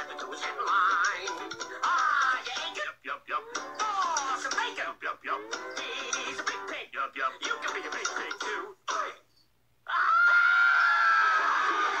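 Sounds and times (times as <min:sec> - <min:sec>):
person singing: 0:00.0 - 0:09.2
long harsh scream: 0:09.8 - 0:12.0.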